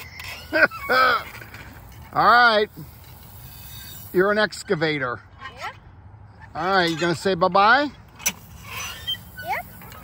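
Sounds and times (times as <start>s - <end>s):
metal joints squeaking: 0.0s - 2.3s, 8.1s - 10.0s.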